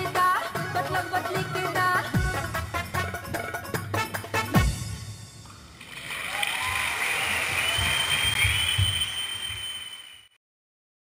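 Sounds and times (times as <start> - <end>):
audience applauding and cheering: 5.8 - 10.4.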